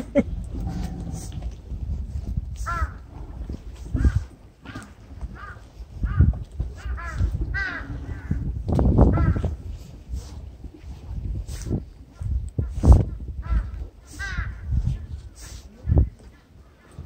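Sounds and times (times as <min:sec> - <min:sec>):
steady low rumble: 0:00.0 - 0:16.3
crows cawing: 0:02.7 - 0:03.0, 0:04.0 - 0:08.4.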